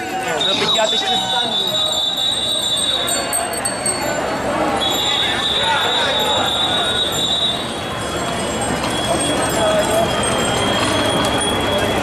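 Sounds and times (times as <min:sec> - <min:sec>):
bicycles rolling: 0:00.0 - 0:12.0
riders chattering: 0:00.0 - 0:12.0
high-pitched brake squeal: 0:00.3 - 0:03.4, 0:04.7 - 0:12.0.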